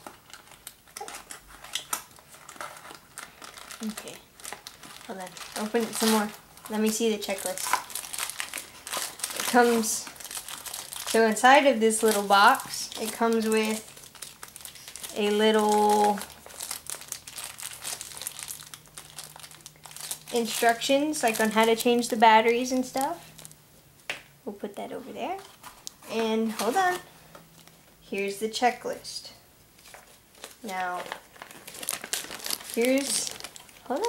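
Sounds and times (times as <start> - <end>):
cardboard box and wrapper crinkling: 0.0 - 23.6, 25.3 - 27.9, 29.8 - 34.0.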